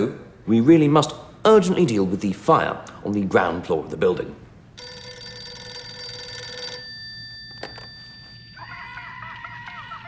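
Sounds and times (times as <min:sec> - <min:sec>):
telephone bell ringing: 0:04.8 - 0:10.0.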